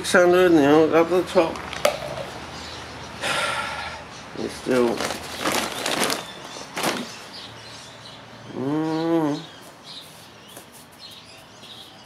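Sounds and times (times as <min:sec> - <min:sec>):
plastic sack rustling: 0:04.6 - 0:07.4.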